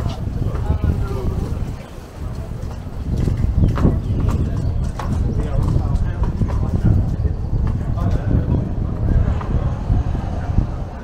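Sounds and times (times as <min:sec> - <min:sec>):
footsteps on pavement: 0:00.0 - 0:09.7
low rumble: 0:00.0 - 0:11.0
passersby talking: 0:00.0 - 0:11.0.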